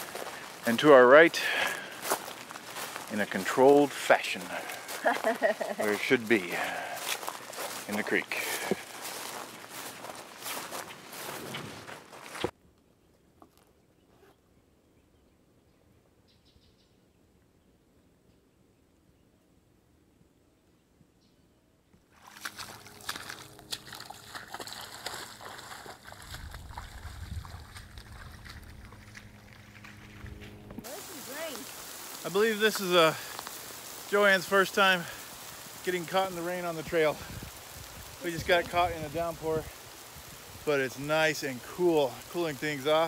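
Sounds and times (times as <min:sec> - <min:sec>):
heavy rain on vegetation: 0:00.0 - 0:11.4, 0:30.8 - 0:43.0
footsteps walking: 0:00.0 - 0:12.5, 0:22.1 - 0:36.4
low rumble: 0:22.8 - 0:30.9.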